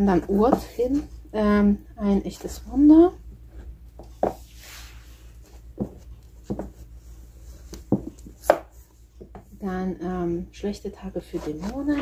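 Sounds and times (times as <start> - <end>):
book knocking against wooden shelf: 5.8 - 6.8, 7.8 - 9.4.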